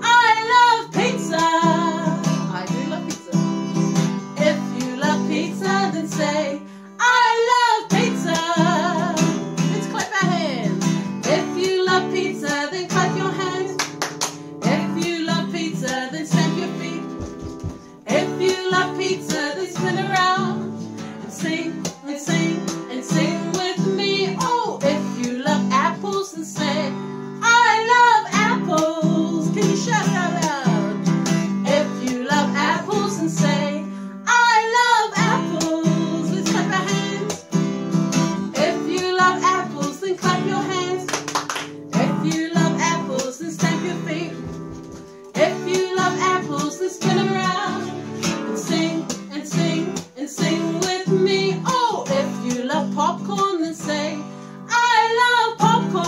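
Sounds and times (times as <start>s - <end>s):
women singing: 0.0s - 14.0s, 14.6s - 41.3s, 41.9s - 44.7s, 45.3s - 56.0s
acoustic guitar strummed: 0.0s - 56.0s.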